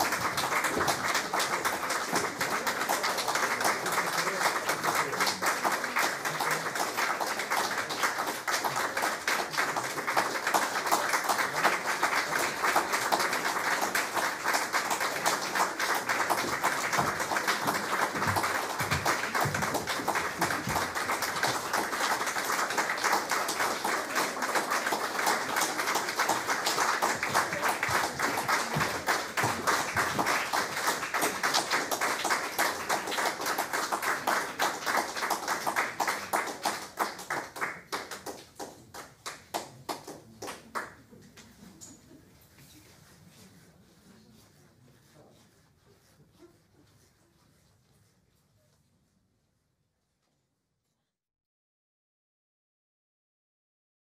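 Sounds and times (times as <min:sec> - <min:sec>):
audience applauding: 0:00.0 - 0:41.0.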